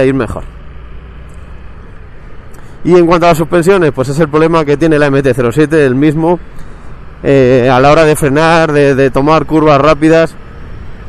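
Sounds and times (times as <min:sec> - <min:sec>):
man talking: 0:00.0 - 0:00.5, 0:02.8 - 0:06.4, 0:07.2 - 0:10.4
vehicle rumble with road noise: 0:00.0 - 0:11.0.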